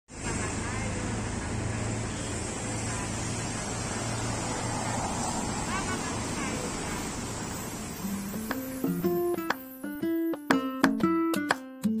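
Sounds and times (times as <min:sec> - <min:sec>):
low engine hum: 0:00.1 - 0:08.1
city street traffic: 0:00.1 - 0:10.6.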